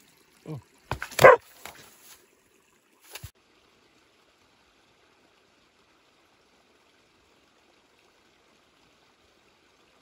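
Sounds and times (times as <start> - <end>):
dog barking: 1.1 - 1.4.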